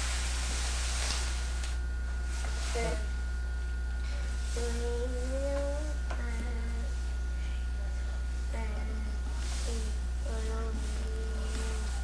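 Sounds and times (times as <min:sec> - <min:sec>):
small child humming: 0:02.7 - 0:03.1, 0:04.5 - 0:07.0, 0:08.6 - 0:12.0.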